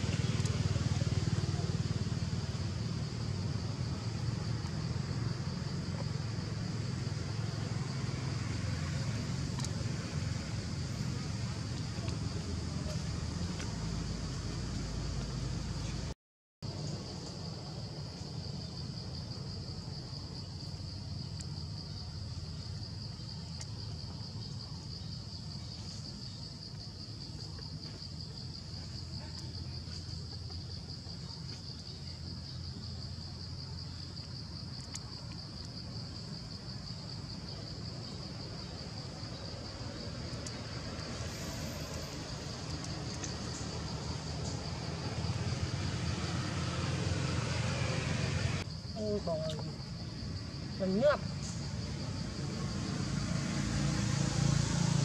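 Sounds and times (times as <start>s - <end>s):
insects droning: 0.0s - 55.0s.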